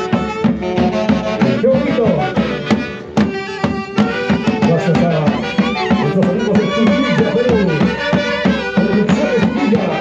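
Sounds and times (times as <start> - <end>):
hand drums beat: 0.0 - 10.0
saxophones playing tune: 0.0 - 10.0.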